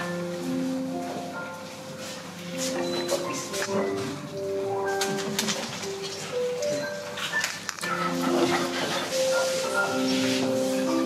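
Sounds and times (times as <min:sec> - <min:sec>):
instrumental music with held notes: 0:00.0 - 0:11.0.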